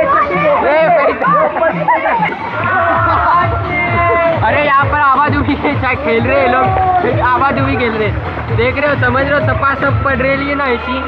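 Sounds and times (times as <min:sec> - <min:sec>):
voices chattering and shouting: 0:00.0 - 0:11.0.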